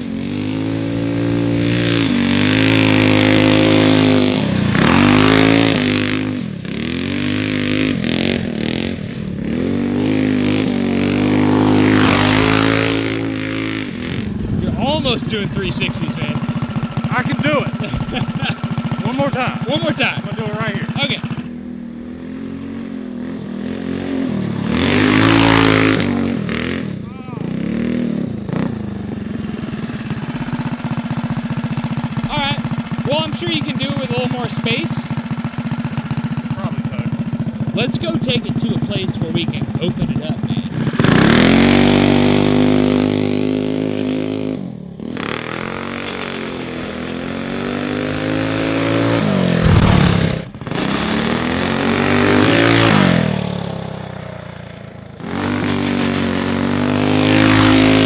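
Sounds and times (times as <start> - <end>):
go-kart engine revving: 0.0 - 58.0.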